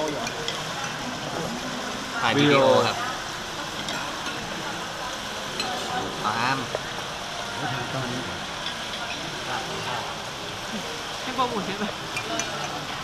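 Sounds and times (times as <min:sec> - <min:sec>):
tableware clicking: 0:00.0 - 0:01.2, 0:03.7 - 0:04.6, 0:05.5 - 0:06.0, 0:12.1 - 0:13.0
restaurant hubbub: 0:00.0 - 0:13.0.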